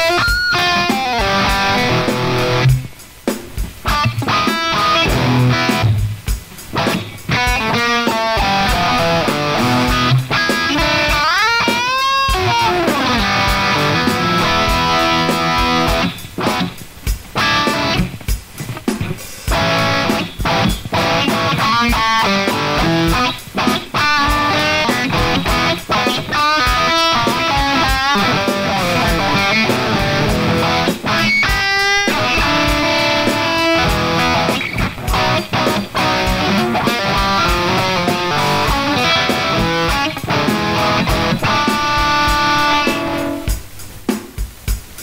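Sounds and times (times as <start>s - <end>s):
blues-rock electric guitar: 0.0s - 44.1s.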